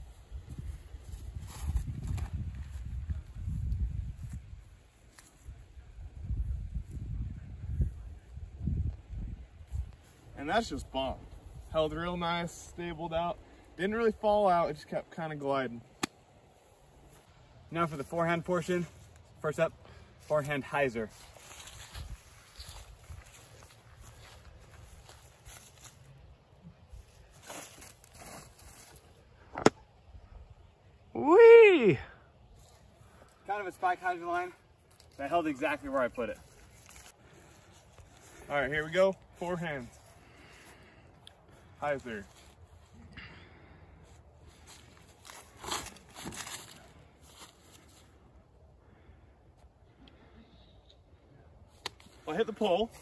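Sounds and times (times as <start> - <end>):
footsteps on grass and dry leaves: 0.0 - 7.2, 15.8 - 29.8, 32.4 - 48.5, 51.6 - 53.0.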